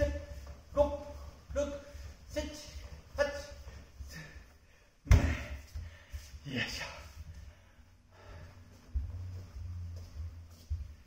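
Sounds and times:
man breathing hard: 0:03.6 - 0:06.4, 0:07.2 - 0:09.0
thud: 0:05.1 - 0:05.6.

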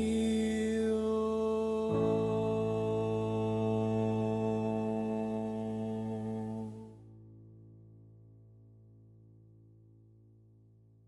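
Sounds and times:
bowed electric cello: 0:00.0 - 0:06.9.

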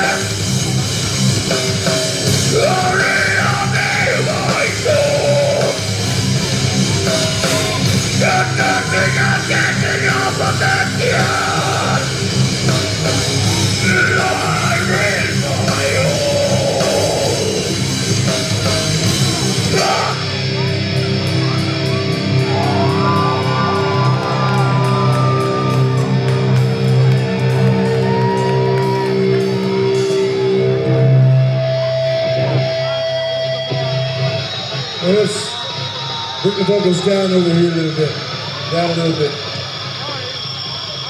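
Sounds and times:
live heavy metal band: 0:00.0 - 0:41.0.

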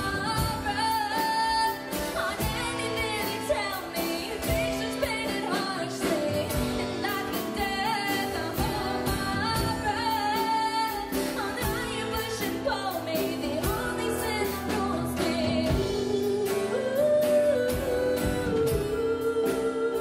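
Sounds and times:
acoustic guitar: 0:00.0 - 0:20.0
drum kit steady beat: 0:00.0 - 0:20.0
woman singing into a microphone: 0:00.0 - 0:20.0.

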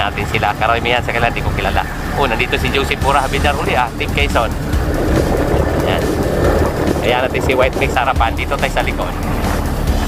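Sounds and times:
vehicle engine rumble: 0:00.0 - 0:10.0
wind noise: 0:00.0 - 0:10.0.

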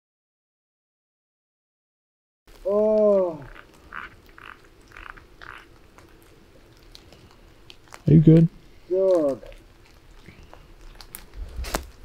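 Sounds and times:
person retching: 0:02.7 - 0:05.7.

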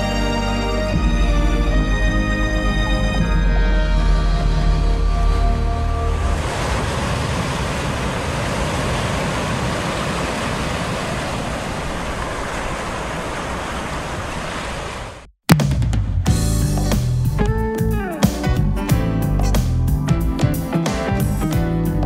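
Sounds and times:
steady wash of noise: 0:06.1 - 0:15.2.

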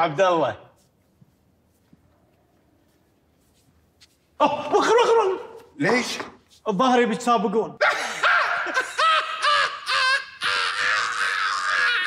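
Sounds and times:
man laughing hysterically: 0:07.8 - 0:12.0.

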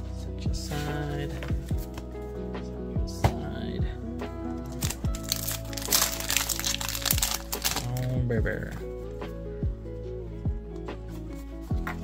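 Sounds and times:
background music with steady beat: 0:00.0 - 0:12.0
wrapper tearing and crinkling: 0:04.7 - 0:08.2.

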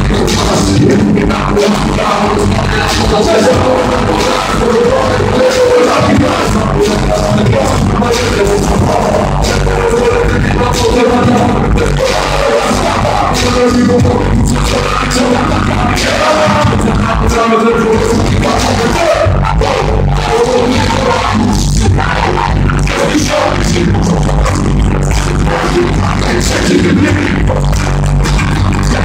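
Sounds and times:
hip hop beat with heavy bass: 0:00.0 - 0:29.0
person rapping into a microphone: 0:00.0 - 0:29.0.

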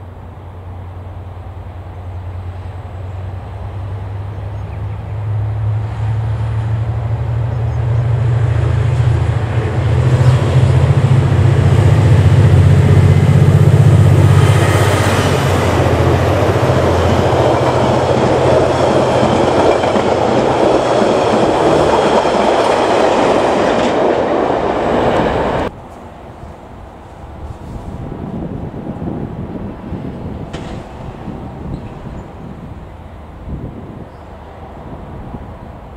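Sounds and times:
diesel locomotives droning: 0:00.0 - 0:35.9
train wheels rumbling and clattering: 0:03.2 - 0:35.9.

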